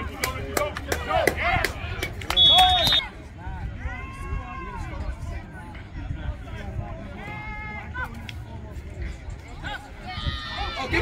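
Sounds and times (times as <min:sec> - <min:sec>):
referee's whistle blast: 0:02.3 - 0:03.1
spectators shouting: 0:09.6 - 0:11.0.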